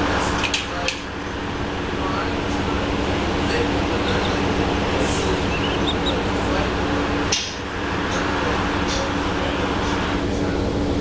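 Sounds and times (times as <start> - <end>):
bus interior rumbling drone: 0.0 - 11.0
constant low hum: 0.0 - 11.0.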